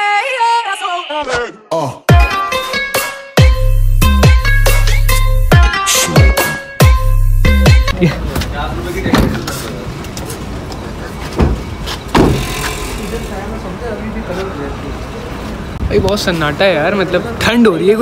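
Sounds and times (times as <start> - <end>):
car door shutting: 11.3 - 12.8
knocks: 11.4 - 12.8.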